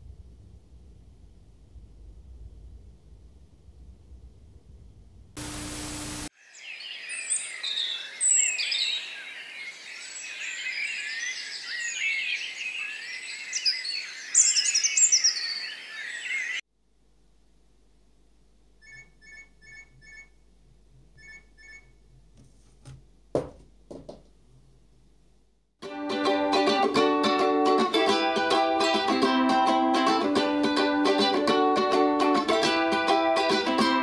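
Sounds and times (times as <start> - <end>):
burst of noise: 5.4 - 6.3
birds chirping and singing: 6.5 - 16.6.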